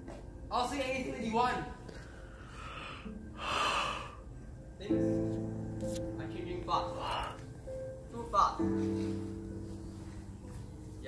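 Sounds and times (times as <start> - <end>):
person gasping breath: 2.0 - 4.2.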